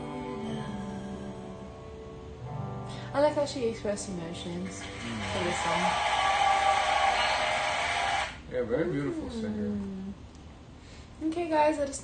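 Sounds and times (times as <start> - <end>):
audience applauding and cheering: 4.8 - 8.4.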